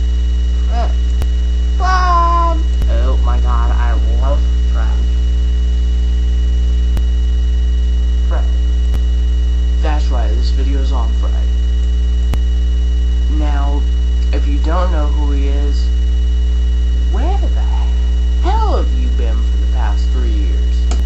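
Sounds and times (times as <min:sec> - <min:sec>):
low electrical mains hum: 0:00.0 - 0:21.0
person's vocal sounds: 0:00.6 - 0:01.0, 0:01.8 - 0:03.1, 0:17.1 - 0:19.4.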